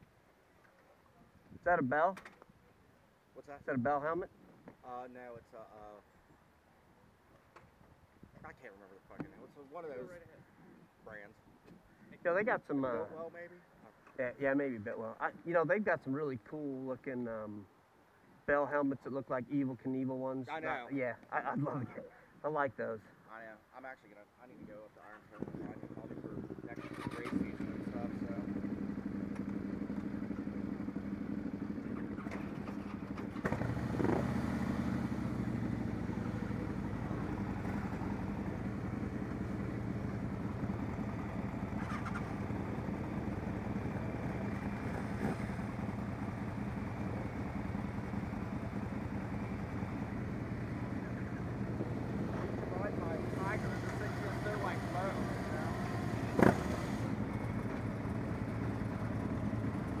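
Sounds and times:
motorcycle engines idling: 25.1 - 60.0.

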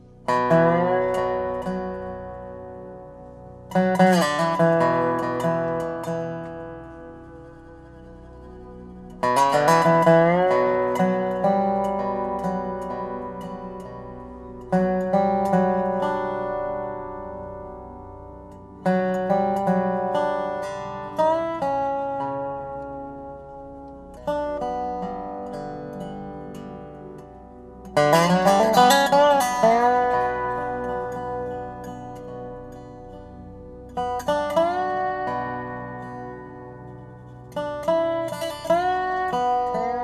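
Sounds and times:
slide guitar notes: 0.0 - 40.0.

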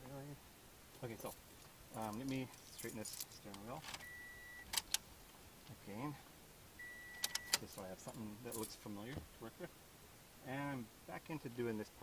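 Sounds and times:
high-pitched beep: 4.0 - 4.6, 6.8 - 7.6.

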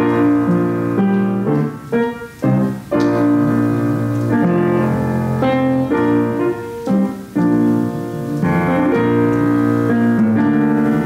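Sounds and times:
slow keyboard chords: 0.0 - 11.0.

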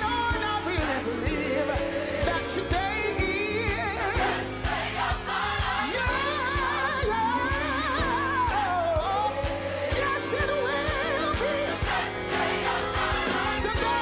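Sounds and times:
backing singers: 0.0 - 14.0
band playing a steady beat: 0.0 - 14.0.

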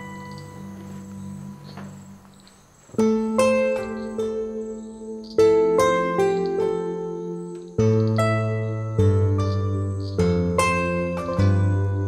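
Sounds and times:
plucked string music: 0.0 - 12.0.

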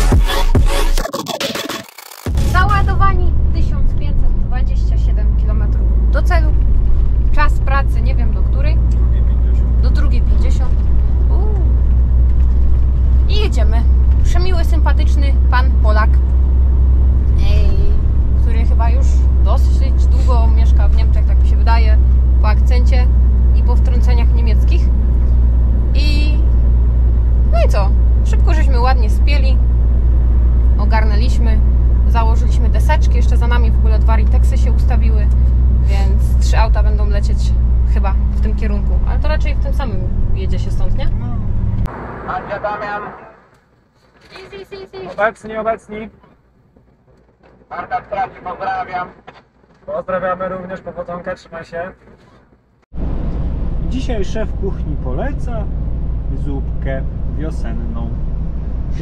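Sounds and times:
truck engine drone: 0.0 - 59.0
road noise inside cab: 2.2 - 59.0
woman talking: 2.4 - 6.6, 7.3 - 8.9, 9.8 - 11.8, 13.2 - 16.2, 17.3 - 25.0, 25.9 - 26.5, 27.5 - 29.6, 30.8 - 41.5, 44.3 - 45.2.

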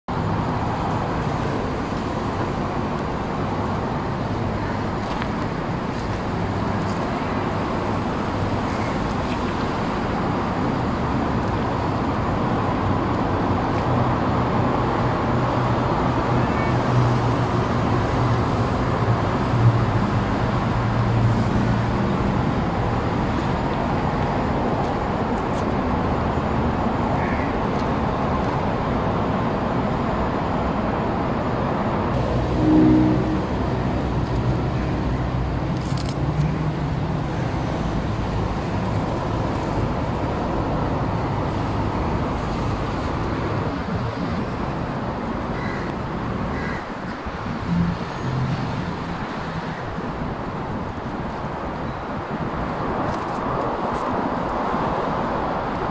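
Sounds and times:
road traffic rumble: 0.1 - 55.9.

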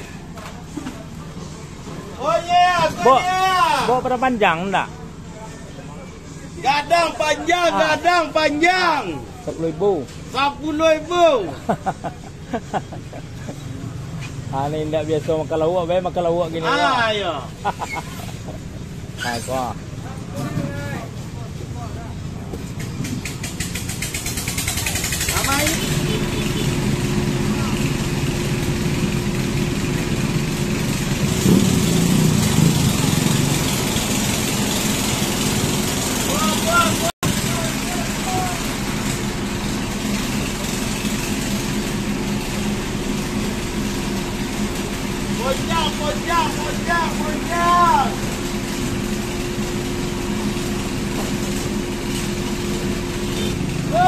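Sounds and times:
street bustle: 0.0 - 54.0
vehicle engine idling: 0.0 - 54.0.

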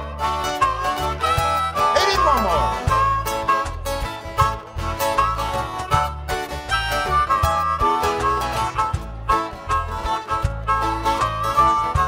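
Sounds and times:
strummed acoustic guitars: 0.0 - 12.0
harmonica solo: 0.2 - 3.8, 6.5 - 12.0.

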